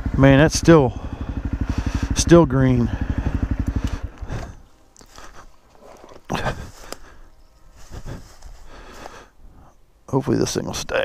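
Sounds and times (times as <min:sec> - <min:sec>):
motorcycle engine idling: 0:00.0 - 0:09.1
footsteps crunching dry leaves: 0:04.2 - 0:09.2.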